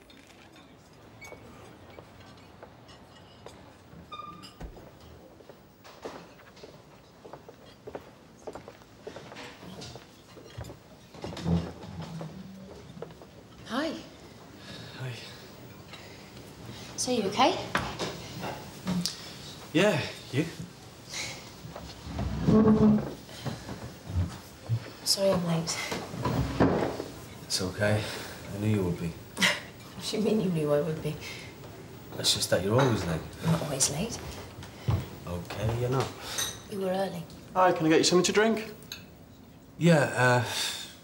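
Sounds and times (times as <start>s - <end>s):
faint restaurant background: 0.0s - 41.0s
chair scraping on floor: 9.3s - 13.4s, 21.7s - 27.2s.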